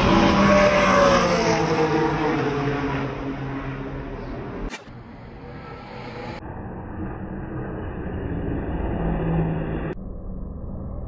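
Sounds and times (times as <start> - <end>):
racing car engines passing: 0.0 - 10.0.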